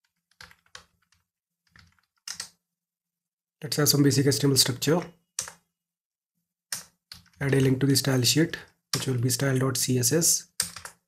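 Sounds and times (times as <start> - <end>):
computer keyboard typing: 0.0 - 2.6, 5.3 - 5.7, 6.7 - 7.7, 8.9 - 9.3, 10.4 - 11.0.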